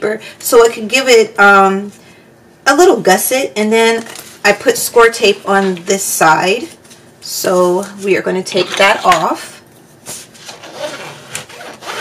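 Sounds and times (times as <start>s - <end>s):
bone folder rubbing paper: 10.1s - 12.0s.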